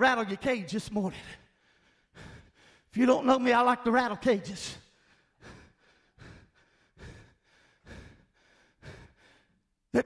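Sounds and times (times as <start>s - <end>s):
man breathing hard: 1.2s - 3.0s, 4.6s - 10.0s.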